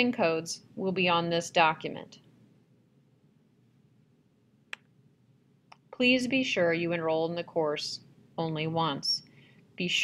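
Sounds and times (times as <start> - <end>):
computer mouse click: 4.7 - 4.9.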